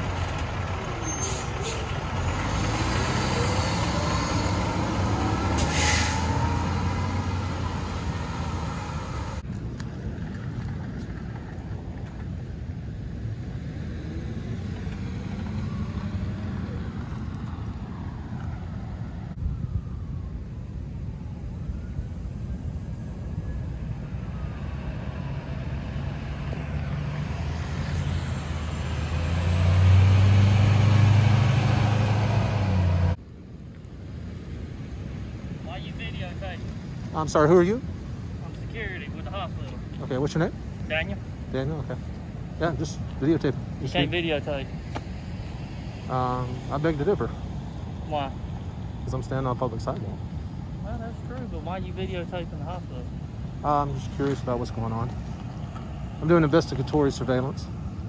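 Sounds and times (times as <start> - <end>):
diesel engines driving slowly: 0.0 - 20.0, 20.6 - 58.0
air brakes hissing: 5.5 - 6.5.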